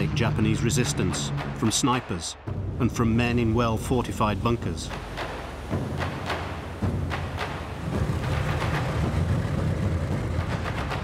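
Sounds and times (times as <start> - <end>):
low engine drone: 7.1 - 11.0.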